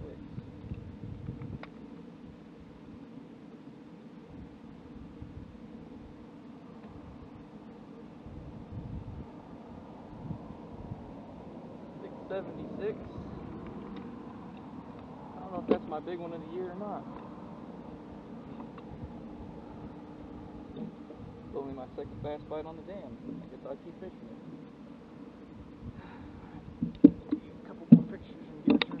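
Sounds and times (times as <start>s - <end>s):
wind buffeting microphone: 0.0s - 3.0s, 4.3s - 6.2s, 8.2s - 16.7s, 17.3s - 23.6s, 25.4s - 29.0s
faint steady hum: 0.0s - 29.0s.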